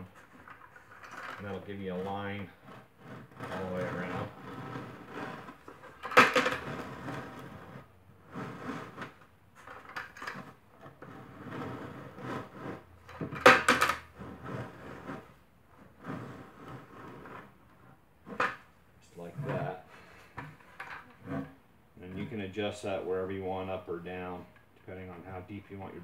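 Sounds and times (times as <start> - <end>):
plastic bucket scraping on concrete: 0.0 - 26.0.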